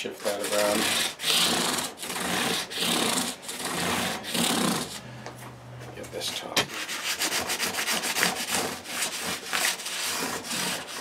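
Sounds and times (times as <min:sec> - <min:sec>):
sandpaper rubbing on wood: 0:00.0 - 0:05.0, 0:06.7 - 0:11.0.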